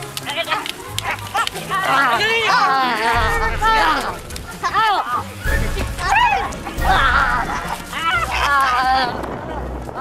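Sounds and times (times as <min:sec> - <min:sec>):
background music: 0:00.0 - 0:10.0
young people yelling: 0:00.2 - 0:09.3.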